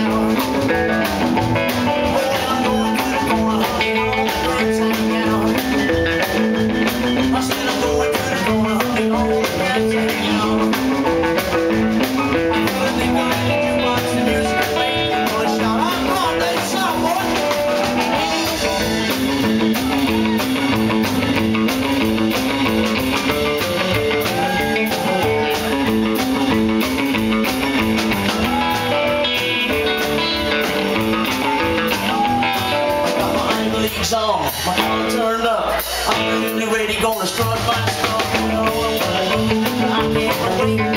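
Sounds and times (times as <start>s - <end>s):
electric guitar with bent notes: 0.0s - 40.9s
live rock and roll band: 0.0s - 40.9s.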